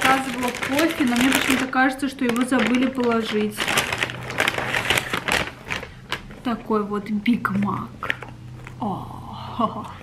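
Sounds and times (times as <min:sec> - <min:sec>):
paper bag rustling: 0:00.0 - 0:06.6.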